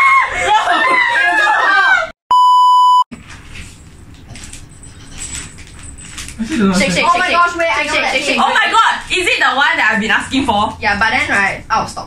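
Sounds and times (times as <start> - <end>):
censor bleep: 2.3 - 3.1.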